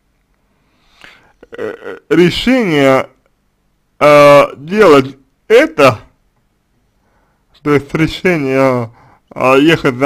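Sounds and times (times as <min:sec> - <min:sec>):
man drawing breath: 0:00.5 - 0:01.4, 0:07.0 - 0:07.5, 0:09.0 - 0:09.3
man throaty voiced sound: 0:01.0 - 0:02.2
man speaking: 0:01.4 - 0:03.3, 0:04.0 - 0:06.2, 0:07.6 - 0:10.0.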